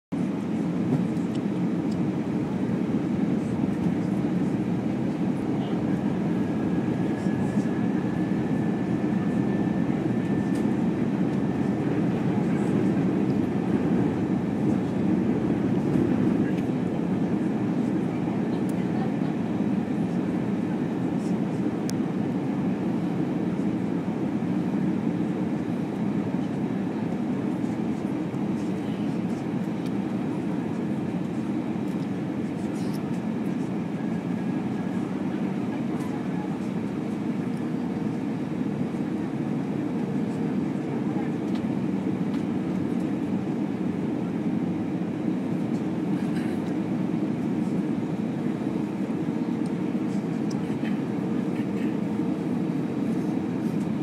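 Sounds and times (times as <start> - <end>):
airliner cabin roar: 0.1 - 54.0.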